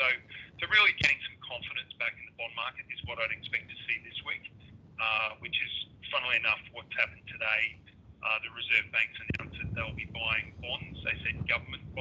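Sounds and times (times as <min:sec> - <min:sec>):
man talking over a phone line: 0:00.0 - 0:12.0.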